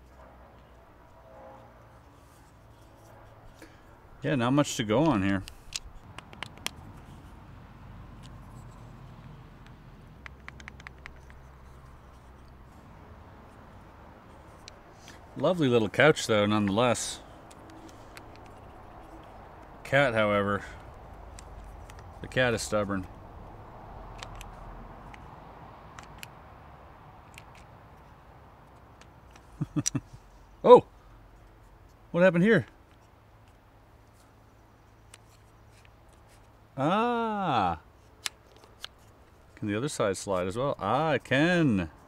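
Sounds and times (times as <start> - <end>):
low outdoor background noise: 0.0 - 42.0
wooden parts clicking: 5.0 - 7.1, 9.2 - 12.6, 17.4 - 19.7, 20.8 - 22.3, 24.1 - 25.3, 27.2 - 27.7, 28.6 - 30.1.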